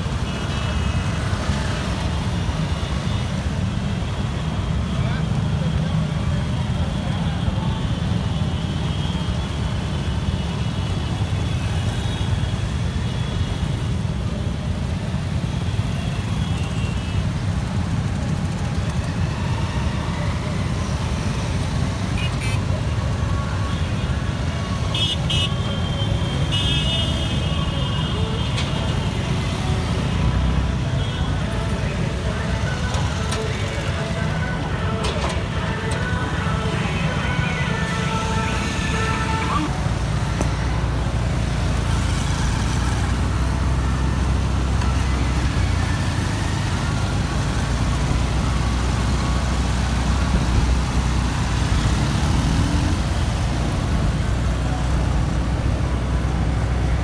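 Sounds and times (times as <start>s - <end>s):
motorcycle engines rumbling: 0.0s - 57.0s
horns tooting: 30.3s - 40.0s.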